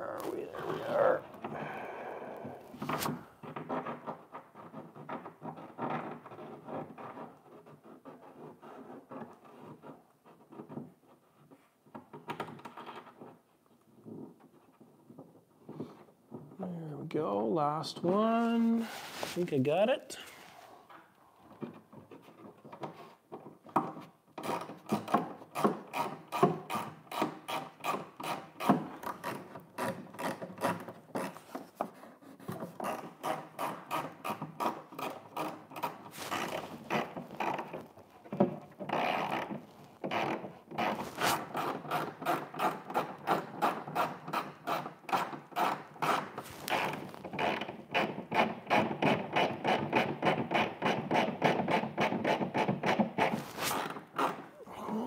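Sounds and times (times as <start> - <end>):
hand tool rasping strokes: 25.6 - 37.8, 40.1 - 47.2, 50.6 - 55.0.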